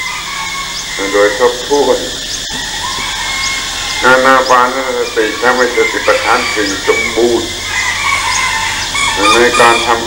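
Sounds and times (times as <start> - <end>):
tape hiss: 0.0 - 10.0
old man speaking into microphone: 4.0 - 7.5, 9.2 - 10.0.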